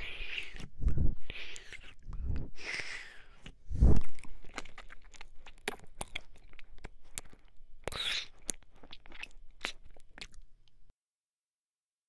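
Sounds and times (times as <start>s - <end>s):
wet mouth clicks and smacks: 3.4s - 10.4s.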